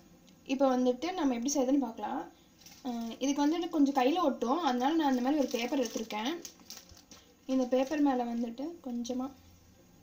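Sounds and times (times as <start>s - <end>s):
woman talking: 0.5s - 6.6s, 7.4s - 9.4s.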